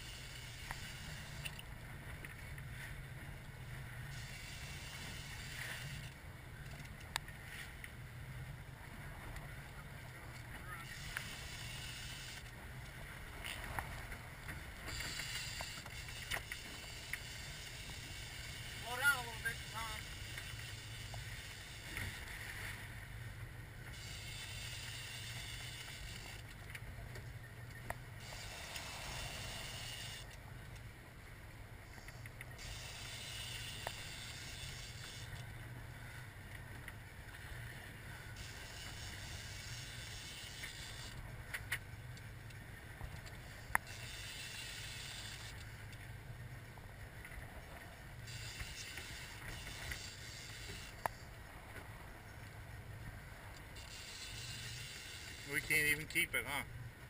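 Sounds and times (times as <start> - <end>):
boat engine humming: 0.0 - 57.0
water and wind hissing: 0.0 - 57.0.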